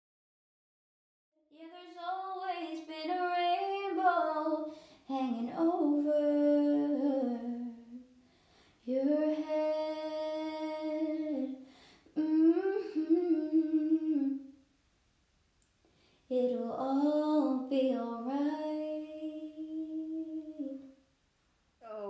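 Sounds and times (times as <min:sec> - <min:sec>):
woman humming a slow melody: 0:12.2 - 0:14.5.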